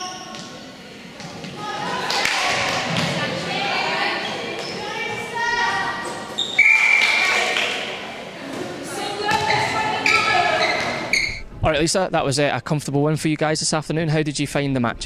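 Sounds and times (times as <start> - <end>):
whistle blast: 6.4 - 7.2.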